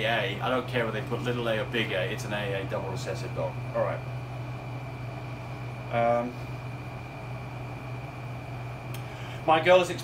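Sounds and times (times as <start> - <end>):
high whine: 0.0 - 10.0
low machine hum: 0.0 - 10.0.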